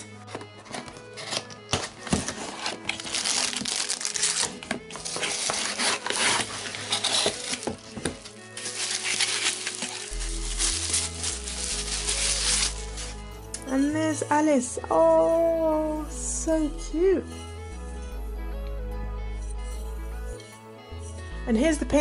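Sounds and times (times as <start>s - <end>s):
background music: 0.0s - 22.0s
cardboard box being opened: 0.3s - 13.1s
bubble wrap crinkling: 0.3s - 13.3s.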